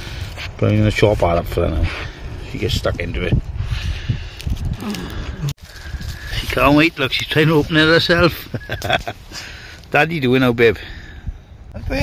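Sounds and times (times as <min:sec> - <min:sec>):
foil rustling: 0:04.4 - 0:09.2.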